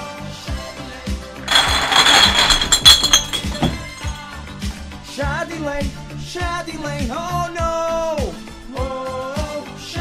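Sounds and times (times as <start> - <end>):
glass bottles clattering together: 1.5 - 4.4.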